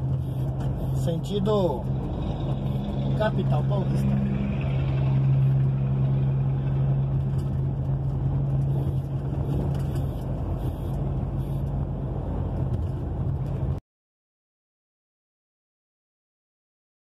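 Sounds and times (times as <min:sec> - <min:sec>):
road and wind noise: 0:00.0 - 0:13.8
truck diesel engine drone: 0:00.0 - 0:13.8.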